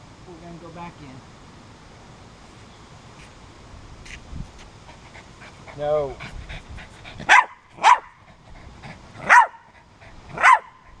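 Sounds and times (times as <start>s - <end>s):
dog barking: 7.3s - 8.2s, 9.2s - 9.7s, 10.3s - 10.8s.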